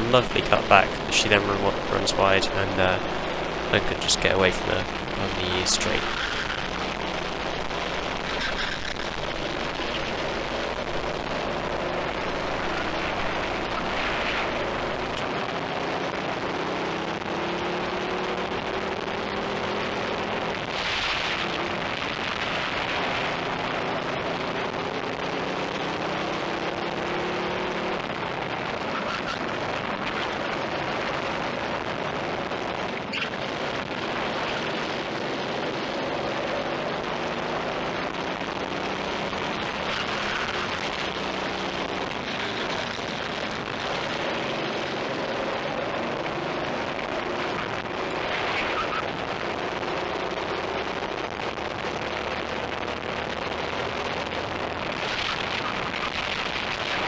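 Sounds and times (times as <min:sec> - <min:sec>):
kart engine revving: 0:00.0 - 0:15.2, 0:38.7 - 0:43.3
track noise: 0:00.0 - 0:15.4, 0:32.0 - 0:57.0.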